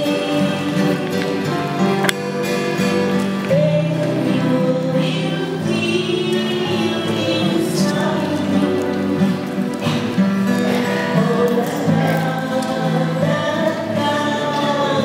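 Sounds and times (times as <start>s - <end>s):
woman singing: 0.0s - 1.8s, 3.3s - 9.5s, 10.6s - 15.0s
acoustic guitar: 0.0s - 15.0s
choir singing: 0.0s - 15.0s.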